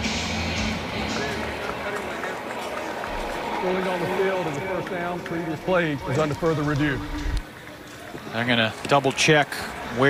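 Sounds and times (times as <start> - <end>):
music playing: 0.0 - 7.6.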